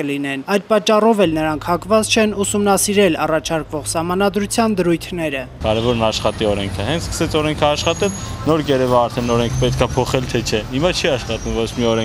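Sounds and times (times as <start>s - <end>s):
street traffic hum: 1.2s - 12.0s
man talking: 5.6s - 12.0s.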